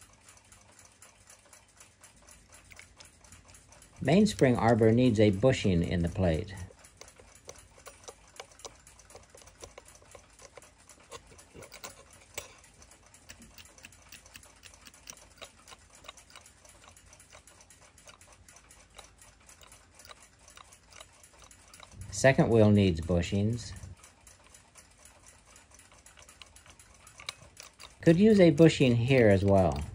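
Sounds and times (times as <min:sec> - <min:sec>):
small metallic ticks and clicks: 0:00.0 - 0:29.9.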